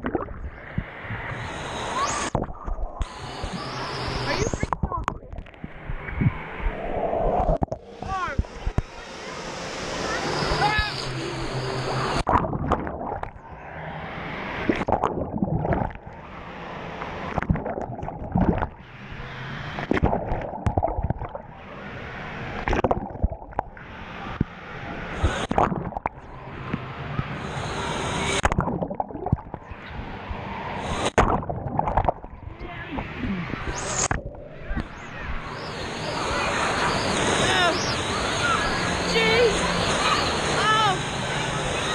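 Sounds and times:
water sloshing and splashing: 0.0s - 0.6s, 12.2s - 13.6s, 14.6s - 16.2s, 17.1s - 18.9s, 19.8s - 21.6s, 28.4s - 35.1s.

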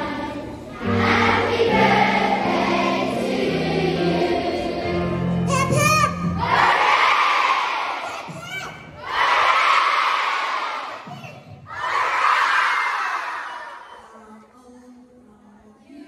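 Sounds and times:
children shouting a cheer: 5.6s - 14.0s.

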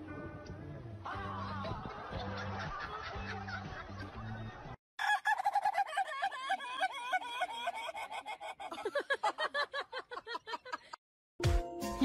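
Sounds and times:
background music with bass line: 0.0s - 4.8s
chicken squawking loudly: 5.0s - 8.6s.

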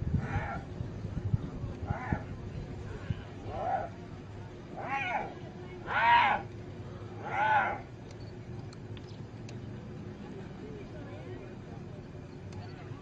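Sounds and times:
hyena cries: 4.8s - 6.5s, 7.2s - 7.8s.

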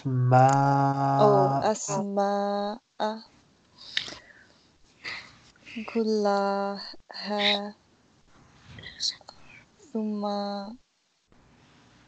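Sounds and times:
soft whispering: 0.0s - 2.2s, 3.0s - 7.8s, 8.6s - 10.6s.

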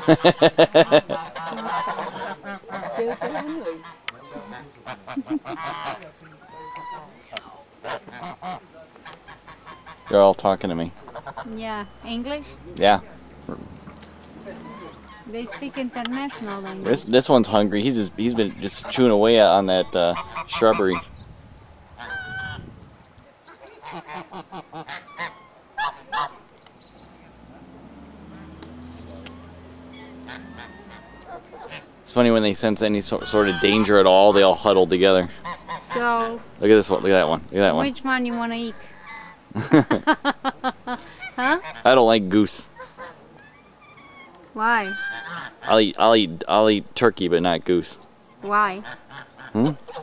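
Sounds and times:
geese honking and gabbling: 0.0s - 21.2s, 21.8s - 22.8s, 23.4s - 50.0s.

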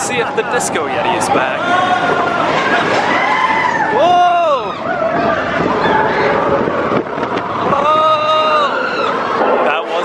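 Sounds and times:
riders screaming and whooping: 1.0s - 9.5s
loud rising scream: 7.5s - 10.0s.

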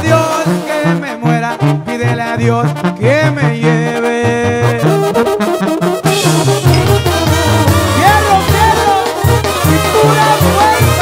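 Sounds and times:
brass band instrumental music: 0.0s - 11.0s.

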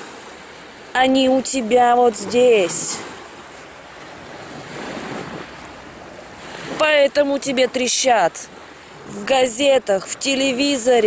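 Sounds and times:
wind rushing over microphone: 0.0s - 9.8s.

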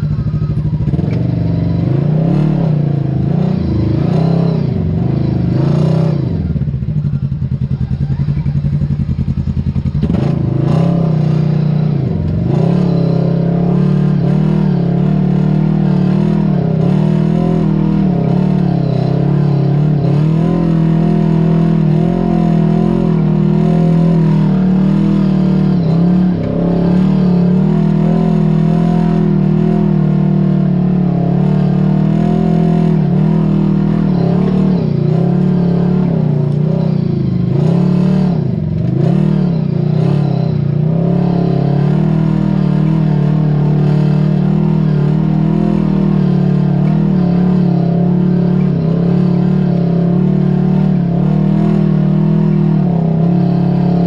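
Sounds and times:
vehicle engine running under load: 0.0s - 54.0s.

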